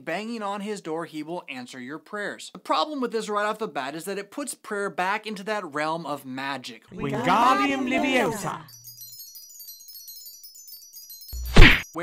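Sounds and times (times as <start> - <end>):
twinkling magic chime sparkle: 7.2 - 12.0.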